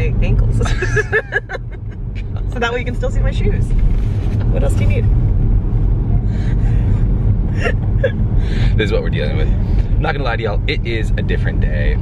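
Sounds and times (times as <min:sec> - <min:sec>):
car cabin road rumble: 0:00.0 - 0:12.0
gasp-like voice sound: 0:06.3 - 0:08.8.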